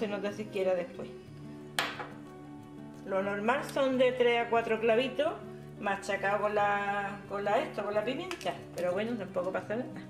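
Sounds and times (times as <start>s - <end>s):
soft background music: 0.0s - 10.0s
glass jar set down on countertop: 1.8s - 2.2s.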